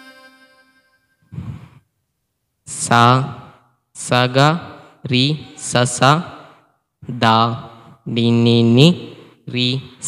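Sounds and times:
breath out puff: 1.3 - 1.8.

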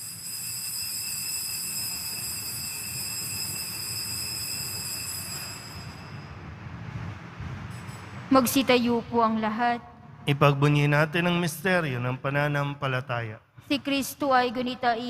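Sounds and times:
altar bell ringing: 0.0 - 6.7.

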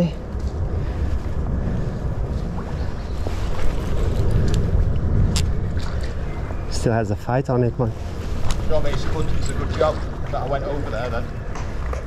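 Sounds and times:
low rumble of noise: 0.0 - 12.0.

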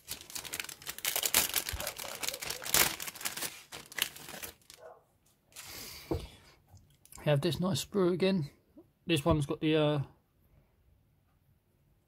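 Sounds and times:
plastic packaging crinkling: 0.0 - 4.9.

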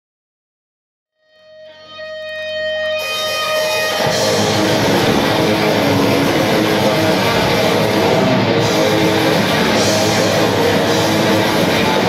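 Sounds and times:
metal band playing live: 2.0 - 12.0.

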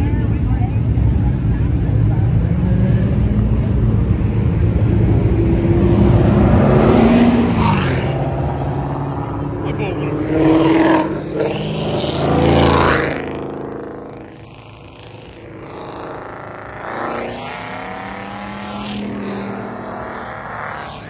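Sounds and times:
sports car engines revving past: 0.0 - 21.0.

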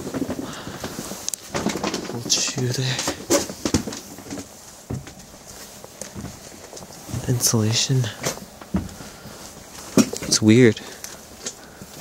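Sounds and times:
footsteps on wooden floor: 0.0 - 10.4.

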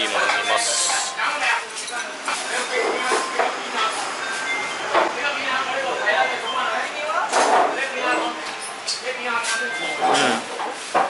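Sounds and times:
restaurant room din: 0.0 - 11.0.

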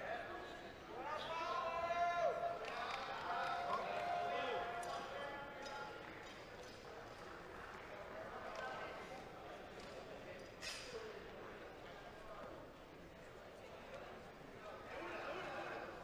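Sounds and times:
faint murmur of voices: 0.0 - 16.0.

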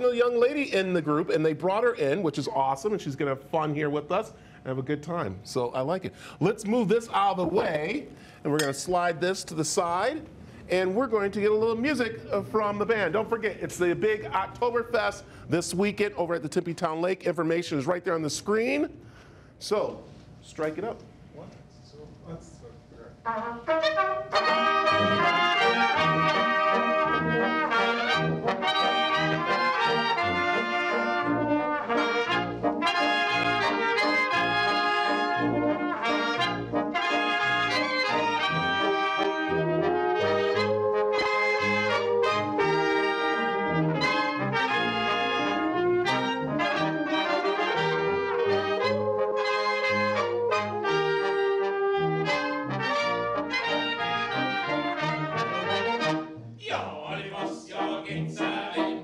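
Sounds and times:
brass band playing: 23.2 - 59.0.

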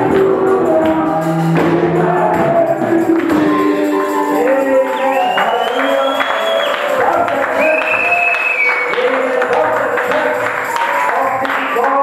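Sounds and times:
congregation singing: 0.0 - 12.0
hand clapping: 0.0 - 12.0.

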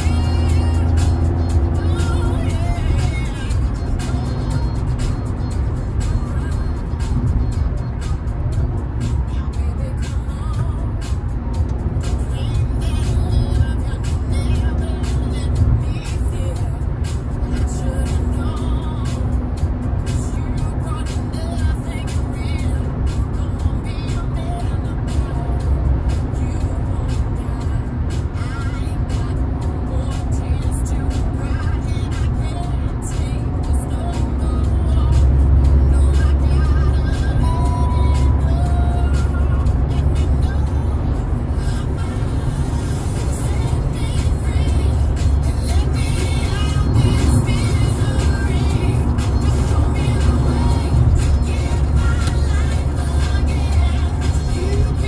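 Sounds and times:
music in a car: 0.0 - 55.0
road and engine rumble: 0.0 - 55.0.

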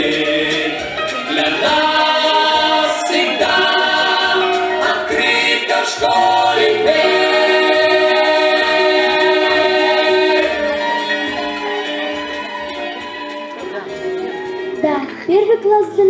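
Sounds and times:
choral singing: 0.0 - 14.7
musical accompaniment: 0.0 - 16.0.

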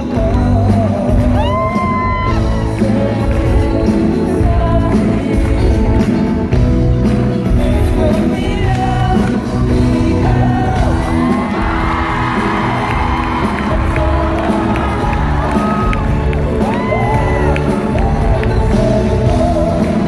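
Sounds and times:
live pop music with singers: 0.0 - 20.0
audience cheering and whooping: 1.1 - 3.1, 10.6 - 20.0.

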